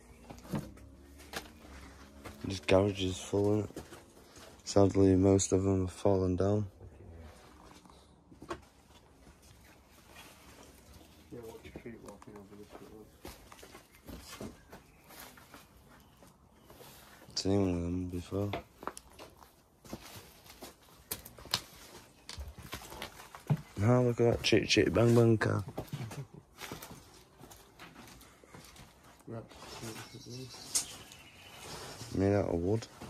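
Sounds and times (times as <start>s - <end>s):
footsteps on wooden planks: 0.1s - 4.9s, 7.4s - 17.4s, 18.2s - 30.2s.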